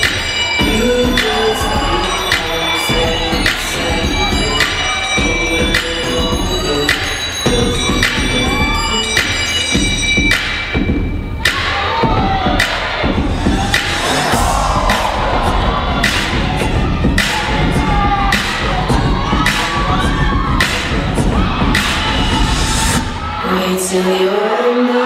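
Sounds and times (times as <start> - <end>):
audience cheering and whooping: 0.0 - 5.4, 11.4 - 24.2
loud dance music with heavy hits: 0.0 - 23.9.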